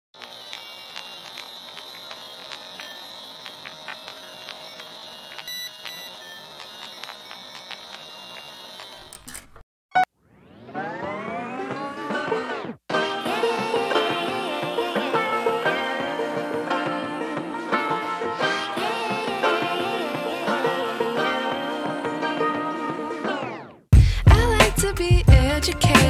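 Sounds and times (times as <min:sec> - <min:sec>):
steady hiss with high whine: 0:00.2 - 0:09.1
crackles and pops: 0:00.2 - 0:09.2
music sliding upward in pitch: 0:10.2 - 0:23.8.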